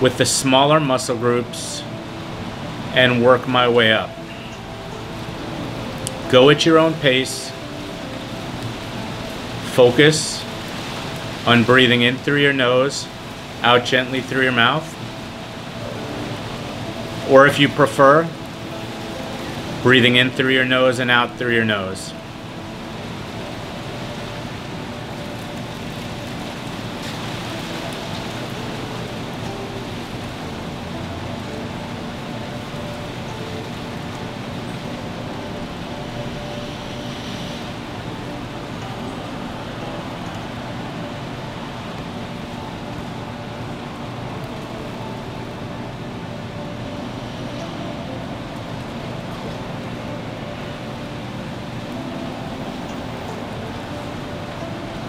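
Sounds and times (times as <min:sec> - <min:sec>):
faint sustained tones: 0:00.0 - 0:55.0
steady rushing noise: 0:00.0 - 0:55.0.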